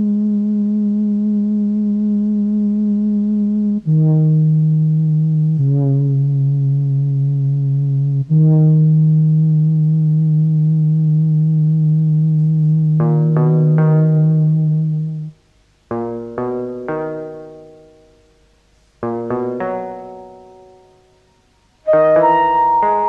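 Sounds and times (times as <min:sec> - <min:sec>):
slow buzzy low instrumental notes: 0:00.0 - 0:18.0, 0:19.0 - 0:20.8, 0:21.8 - 0:23.0.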